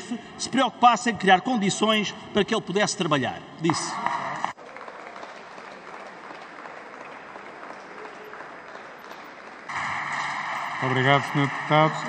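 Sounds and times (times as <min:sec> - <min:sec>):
applause in a chamber: 0:03.6 - 0:12.0.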